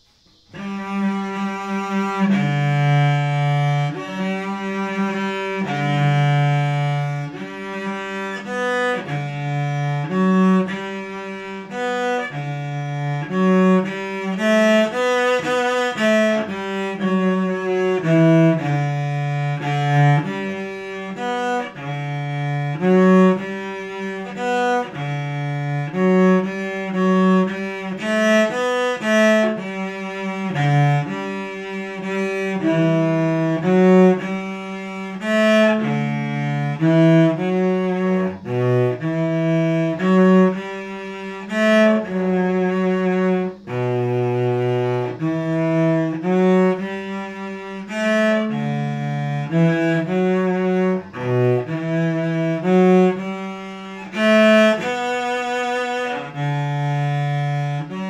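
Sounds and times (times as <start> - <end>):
solo cello bowed melody: 0.0 - 58.0.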